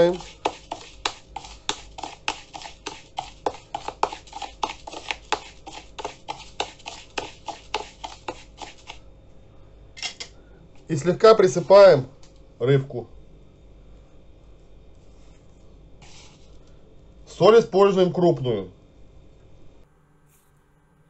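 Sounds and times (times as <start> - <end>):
spoon scraping in plastic bowl: 0.0 - 9.0, 16.0 - 16.5.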